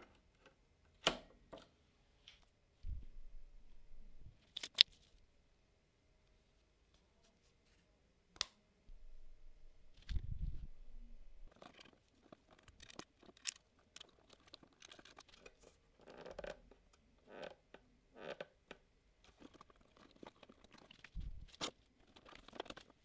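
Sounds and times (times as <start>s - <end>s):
wire rustling: 9.9s - 16.7s, 19.3s - 23.0s.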